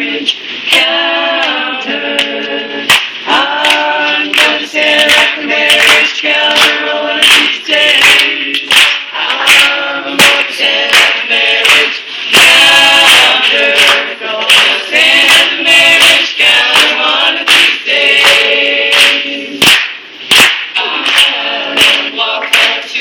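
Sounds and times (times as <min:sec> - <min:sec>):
group singing without instruments: 0:00.0 - 0:23.0
hand claps: 0:02.2 - 0:22.8.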